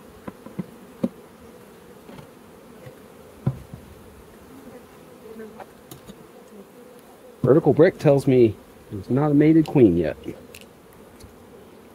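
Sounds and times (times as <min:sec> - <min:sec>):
honey bees buzzing: 0:00.0 - 0:11.9.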